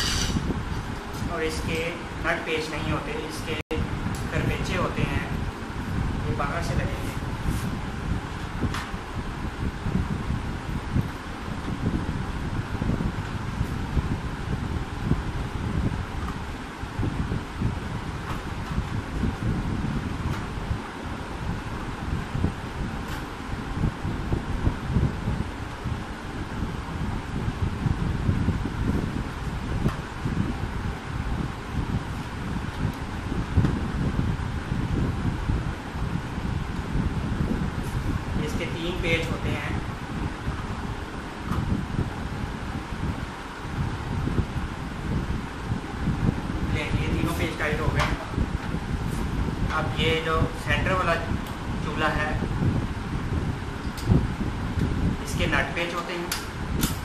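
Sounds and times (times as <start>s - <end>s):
low rumbling wind noise: 0.0s - 57.0s.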